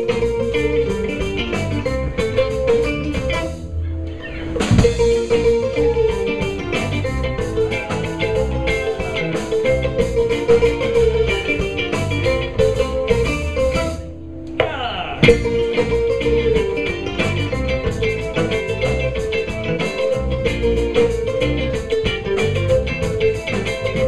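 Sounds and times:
bass guitar: 0.0 - 24.0
drum kit: 0.0 - 24.0
electric guitar: 0.0 - 24.0
kora: 0.0 - 24.0.

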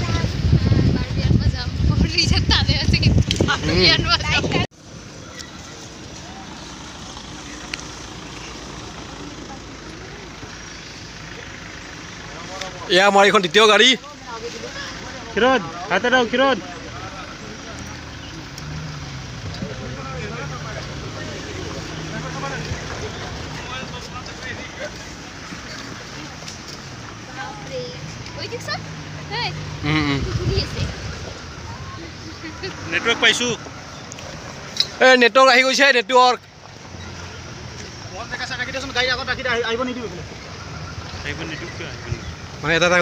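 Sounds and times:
jeep driving on dirt track: 0.0 - 43.0
vehicle engine idling: 0.0 - 43.0.

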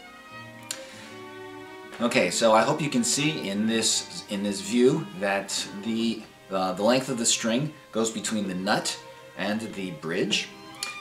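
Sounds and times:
bowed strings chamber music: 0.0 - 11.0
brief click: 0.6 - 0.8, 10.7 - 11.0.

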